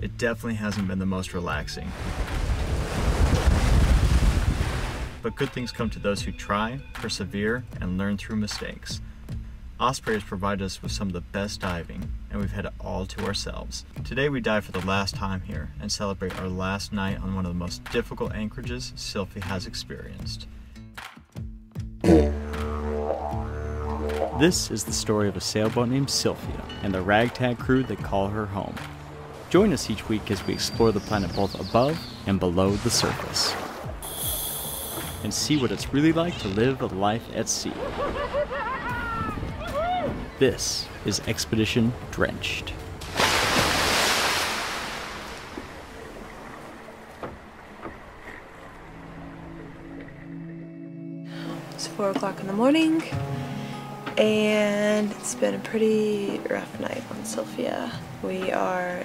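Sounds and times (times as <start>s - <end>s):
water splashing: 1.8s - 5.2s, 22.0s - 39.6s, 40.2s - 50.2s
didgeridoo drone: 22.0s - 27.0s
low steady music notes: 22.0s - 32.6s.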